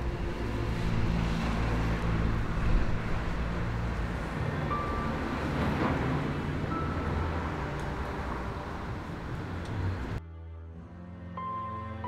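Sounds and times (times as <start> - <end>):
vehicle passing: 0.0 - 10.2.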